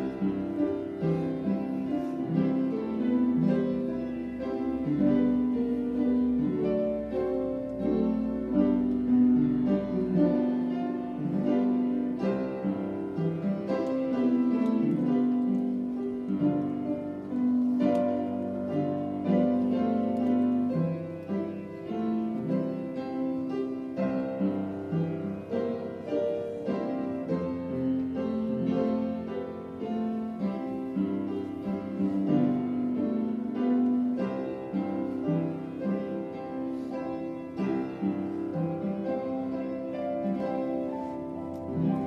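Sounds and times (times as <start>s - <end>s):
hymn played on piano: 0.0s - 42.0s.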